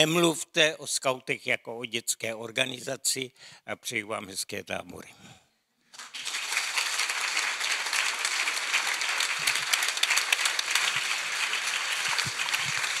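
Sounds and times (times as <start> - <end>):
audience applauding: 5.9 - 13.0.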